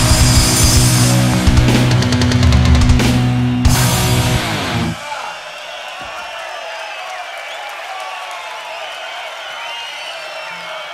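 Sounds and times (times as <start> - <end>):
rock band final chord: 0.0 - 5.0
audience cheering and shouting: 0.0 - 10.9.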